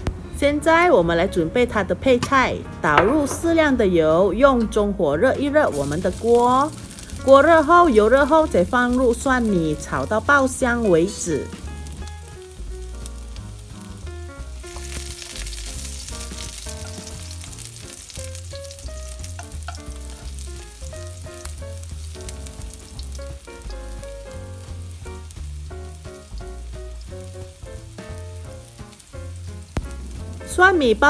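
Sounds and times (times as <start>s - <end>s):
background music with bass line: 3.7s - 31.0s
garlic sizzling in hot oil: 4.5s - 31.0s
spatula stirring in wok: 11.4s - 30.4s.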